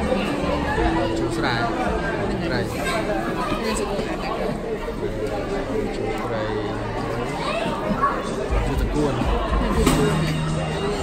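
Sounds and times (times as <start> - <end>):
background chatter: 0.0 - 11.0
people talking: 0.0 - 11.0.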